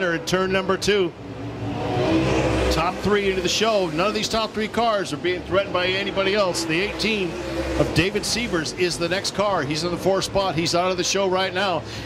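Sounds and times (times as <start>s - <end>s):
race car engines passing: 0.0s - 12.0s.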